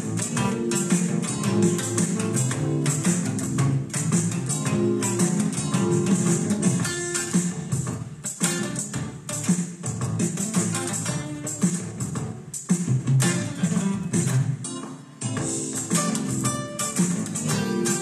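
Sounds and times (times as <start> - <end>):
backing track music: 0.0 - 18.0
electric guitar strumming: 0.0 - 18.0.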